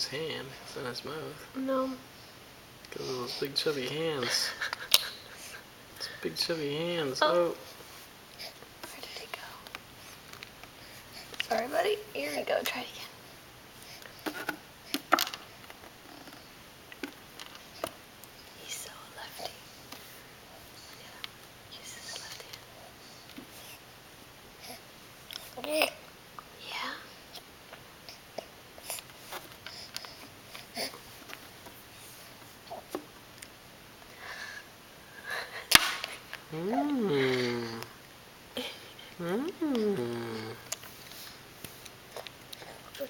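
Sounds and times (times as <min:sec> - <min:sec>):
whispered voice: 0:18.6 - 0:19.6, 0:20.9 - 0:22.7.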